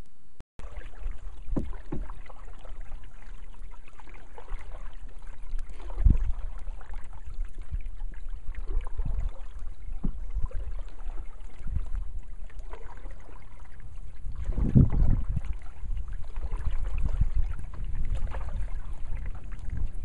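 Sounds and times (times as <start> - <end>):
paddle strokes swishing in water: 0.6 - 20.0.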